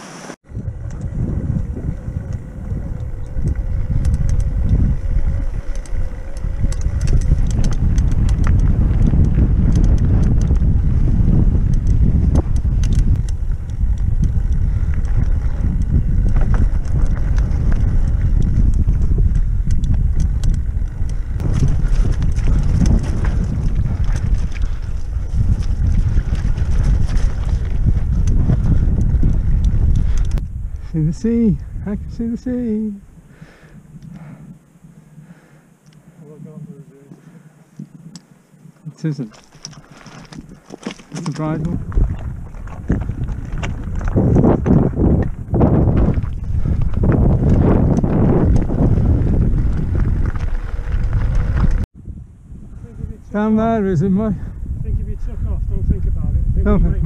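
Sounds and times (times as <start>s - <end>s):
bike rattling over stones: 0.0s - 31.4s, 39.0s - 51.9s
wind buffeting microphone: 0.4s - 57.0s.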